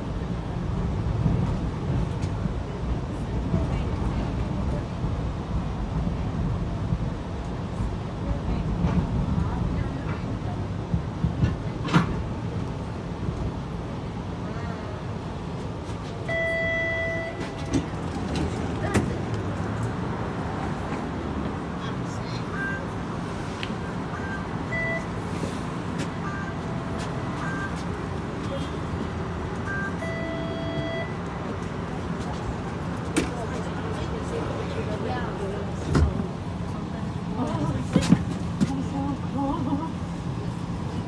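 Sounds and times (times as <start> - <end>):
streetcar rumbling on rails: 0.0 - 41.0.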